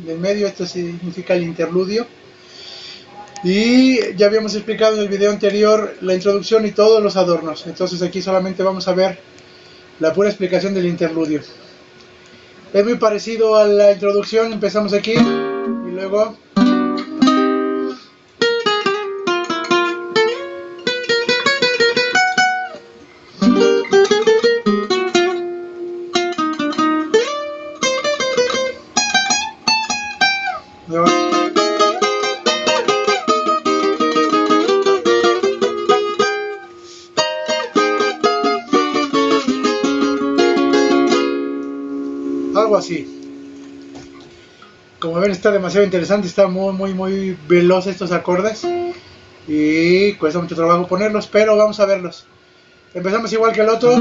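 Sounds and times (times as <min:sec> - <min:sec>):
guitar notes ringing: 0:14.6 - 0:44.7, 0:48.6 - 0:49.0
nylon-string guitar plucking runs: 0:23.4 - 0:25.6.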